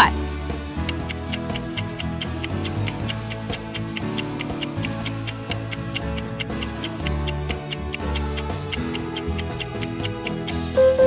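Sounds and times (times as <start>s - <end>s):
background music with low notes: 0.0s - 11.0s
countdown timer ticking: 0.8s - 11.0s.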